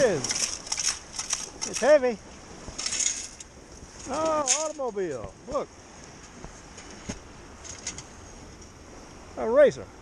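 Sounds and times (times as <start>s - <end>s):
wet sand rattling through metal scoop: 0.0s - 2.2s, 2.8s - 5.2s.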